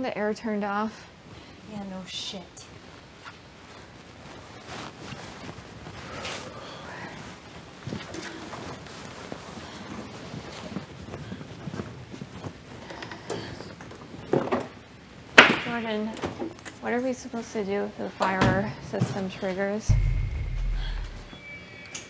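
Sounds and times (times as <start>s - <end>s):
knocks and clicks of objects: 19.9s - 21.4s.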